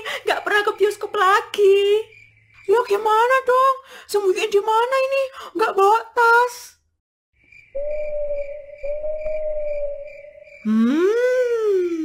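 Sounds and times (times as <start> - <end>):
crickets chirping: 0.0 - 3.9, 7.4 - 12.0
eerie whistle-like tone: 7.8 - 11.8.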